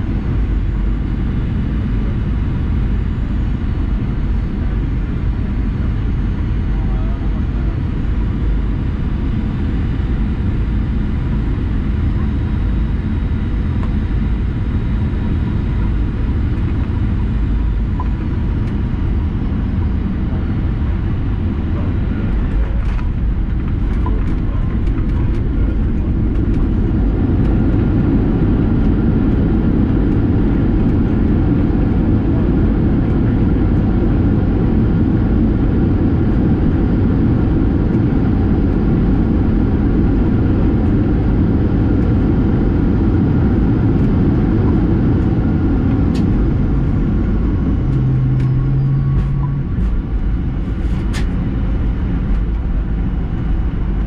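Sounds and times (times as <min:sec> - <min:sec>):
low hum: 0:00.0 - 0:54.0
wheels and engines rumbling: 0:41.5 - 0:54.0.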